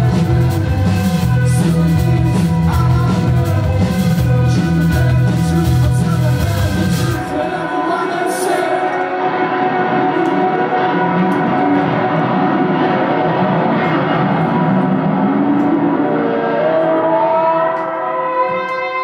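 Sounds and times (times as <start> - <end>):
live band playing loud music: 0.0 - 19.0.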